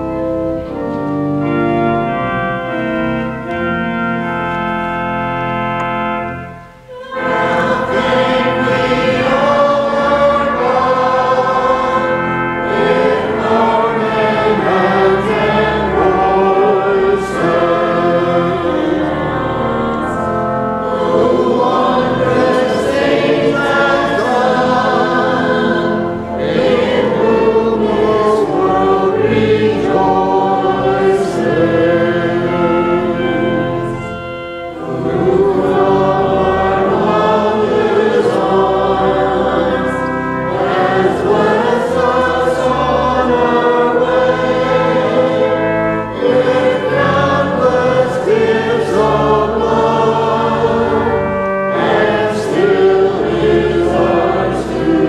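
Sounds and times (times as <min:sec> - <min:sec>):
group singing a hymn: 0:06.7 - 0:55.0.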